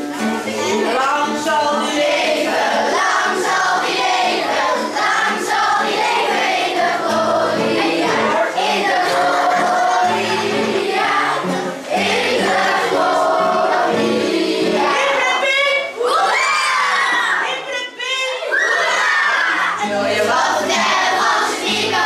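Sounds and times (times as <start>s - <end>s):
guitar accompaniment: 0.0s - 16.4s, 18.7s - 22.0s
children singing: 0.0s - 17.4s, 18.4s - 22.0s
children shouting and cheering: 0.0s - 22.0s.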